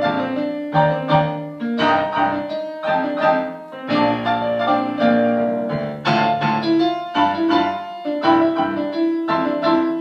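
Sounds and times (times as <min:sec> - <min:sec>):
piano and keyboard waltz: 0:00.0 - 0:10.0.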